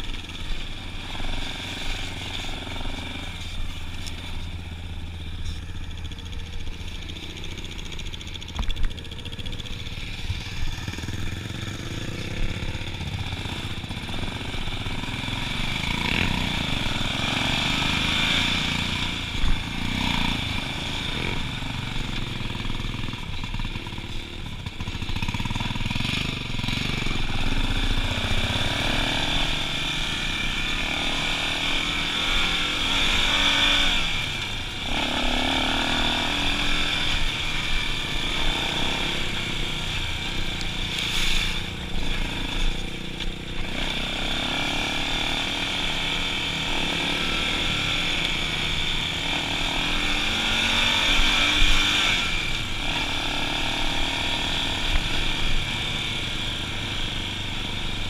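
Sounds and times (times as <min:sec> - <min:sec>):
atv engine running: 0:00.0 - 0:58.0.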